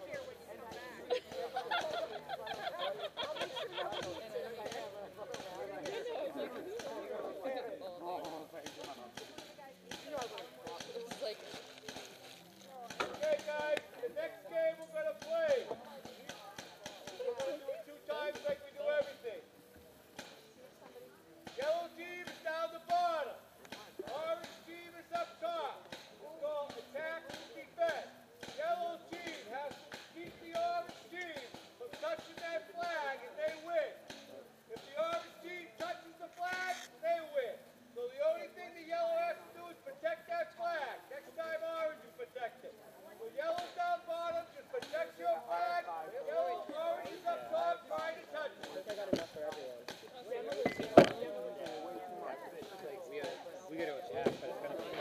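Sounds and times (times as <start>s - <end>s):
people talking: 0.0s - 55.0s.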